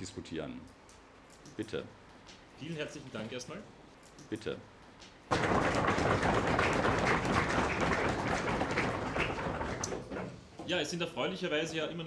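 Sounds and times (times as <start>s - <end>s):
audience applause: 5.3s - 10.1s.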